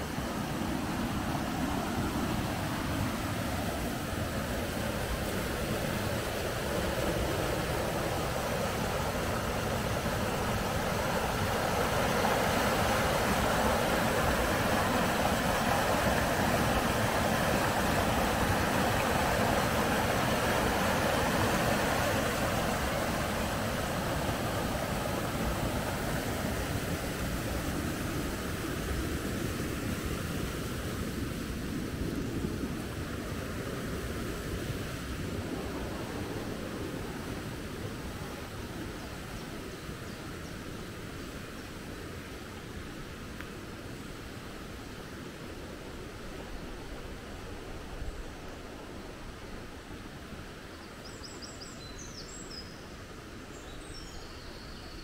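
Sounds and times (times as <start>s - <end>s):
river rushing over rocks: 0.0s - 54.2s.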